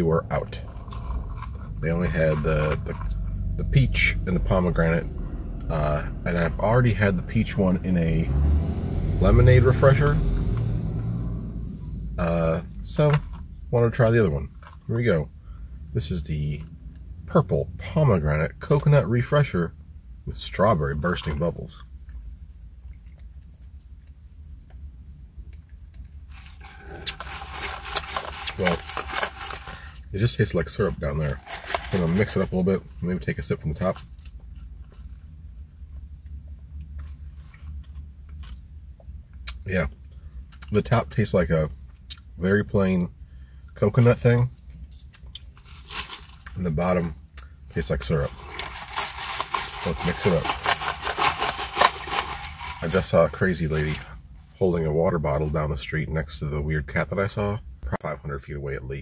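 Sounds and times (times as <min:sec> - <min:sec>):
low steady hum: 0:00.0 - 0:59.0
straw scraping in plastic cup: 0:26.3 - 0:30.0, 0:31.2 - 0:32.5, 0:48.0 - 0:54.1.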